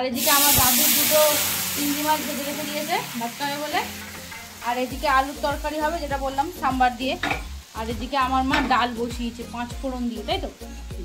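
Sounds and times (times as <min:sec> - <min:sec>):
food sizzling in a pan: 0:00.0 - 0:11.0
stirring in a pan: 0:02.5 - 0:05.2.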